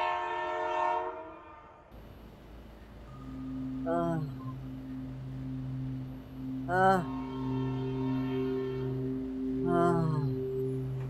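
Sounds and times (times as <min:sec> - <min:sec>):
low sustained drone: 0:01.9 - 0:11.0
wordless vocal note: 0:03.1 - 0:11.0.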